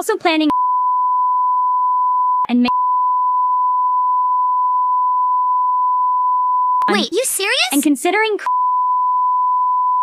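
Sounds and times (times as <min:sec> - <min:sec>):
censor bleep tone: 0:00.5 - 0:07.0, 0:08.5 - 0:10.0
person speaking: 0:06.9 - 0:08.4.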